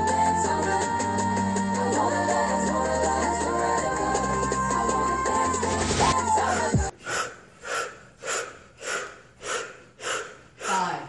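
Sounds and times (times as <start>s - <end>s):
forceful rhythmic exhalations: 0.0s - 11.0s.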